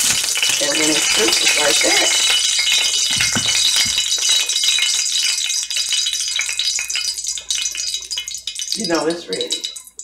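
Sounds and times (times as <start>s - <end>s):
hot oil sizzling and crackling: 0.0s - 10.0s.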